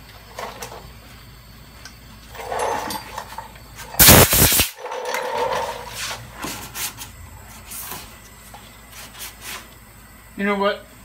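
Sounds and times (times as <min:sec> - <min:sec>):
short rush of noise: 0:04.0 - 0:04.7.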